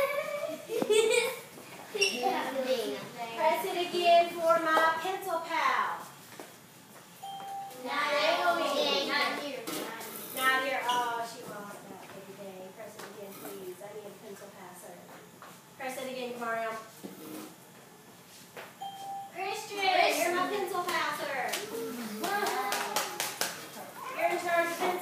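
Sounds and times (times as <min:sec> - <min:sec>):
short electronic beep: 0:07.2 - 0:07.8, 0:18.8 - 0:19.4
children's voices: 0:07.8 - 0:10.1, 0:21.7 - 0:23.3.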